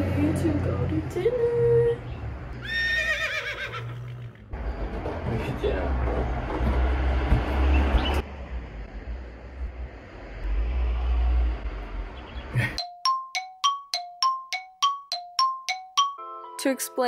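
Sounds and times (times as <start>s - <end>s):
bell-like music melody: 12.8s - 17.0s.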